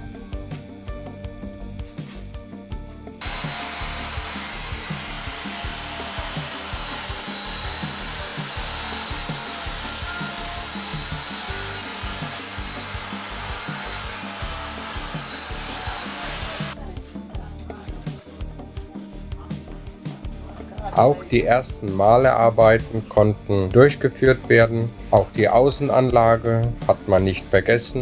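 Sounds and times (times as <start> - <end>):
quiet background music: 0.0 - 28.0
machinery whirring with hiss: 3.2 - 16.8.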